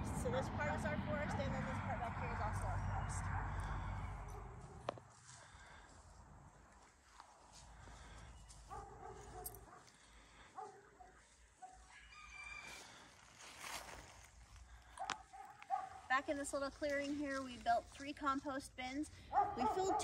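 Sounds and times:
distant dog barking: 2.6 - 4.9, 8.6 - 12.0, 14.9 - 16.1, 19.2 - 20.0.

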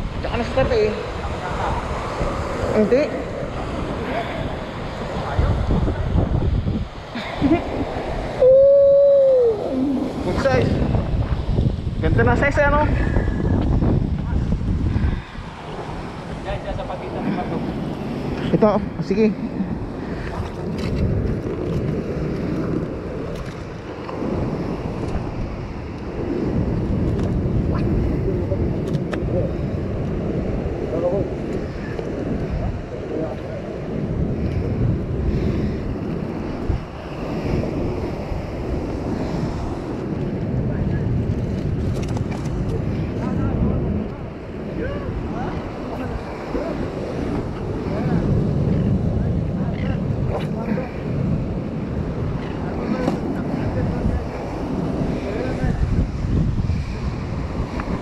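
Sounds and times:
surf washing over rocks: 0.0 - 58.0
wind buffeting microphone: 0.0 - 58.0.

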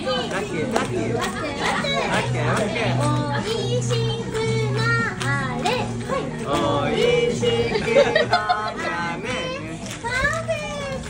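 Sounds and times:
laughter: 7.6 - 9.0.

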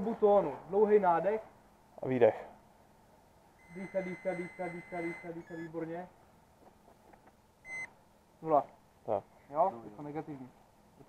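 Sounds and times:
breathalyzer beep: 3.6 - 5.8, 7.7 - 7.9.

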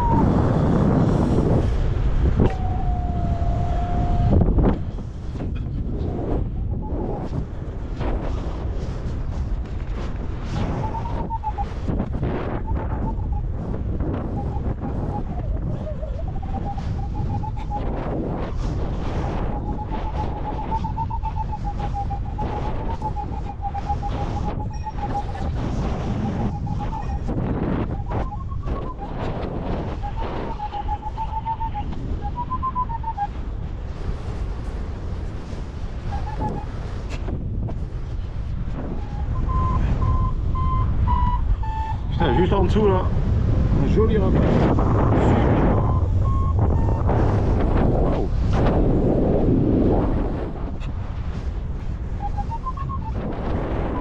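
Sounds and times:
wind buffeting microphone: 0.0 - 54.0
electronic beeping tone: 10.8 - 11.8, 19.5 - 25.5, 26.1 - 27.3, 30.0 - 33.3, 39.0 - 42.4, 45.7 - 47.1.

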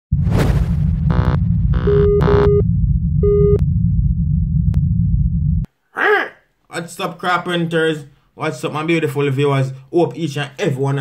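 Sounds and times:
deep rumble: 0.1 - 5.7
short electronic beeps: 1.1 - 2.6, 3.2 - 3.6.

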